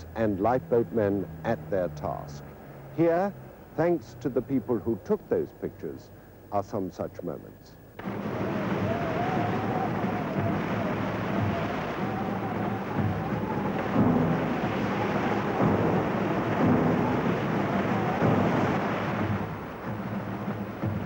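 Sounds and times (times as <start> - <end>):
waves crashing on breakwater: 8.0 - 21.0
wind howling: 8.0 - 21.0.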